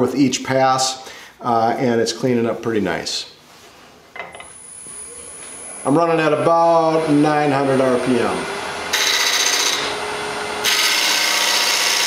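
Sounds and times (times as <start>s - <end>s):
wood lathe whine and motor hum: 4.5s - 12.0s.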